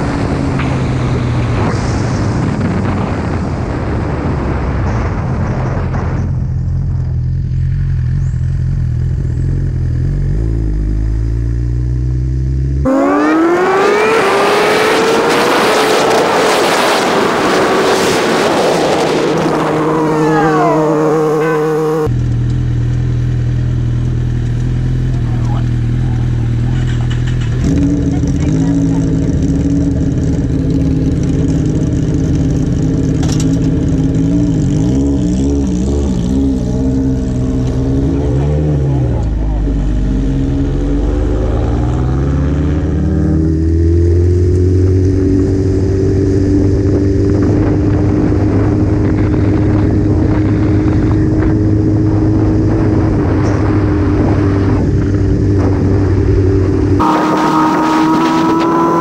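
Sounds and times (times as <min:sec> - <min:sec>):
wind noise: 0:00.0 - 0:07.6, 0:12.9 - 0:22.1, 0:40.1 - 0:59.0
motorcycle engine: 0:04.8 - 0:59.0.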